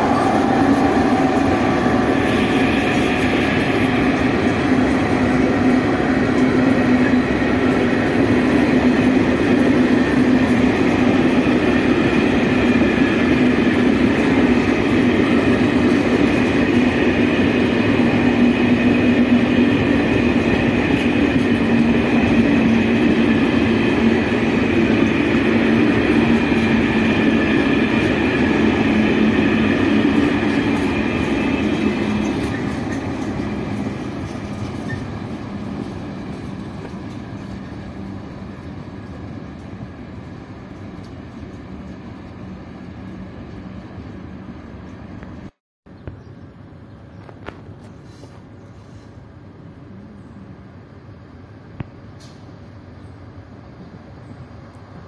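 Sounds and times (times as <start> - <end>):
freight train wheels clattering: 0.0 - 44.0.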